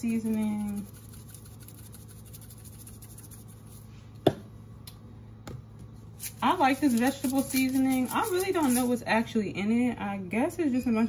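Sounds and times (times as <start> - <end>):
seasoning shaken from plastic bottle: 0.0 - 3.8, 6.2 - 9.0
low steady hum: 0.0 - 11.0.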